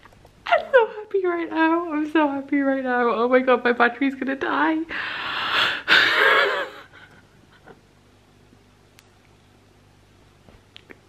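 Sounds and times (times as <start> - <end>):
woman gasping: 4.9 - 6.4.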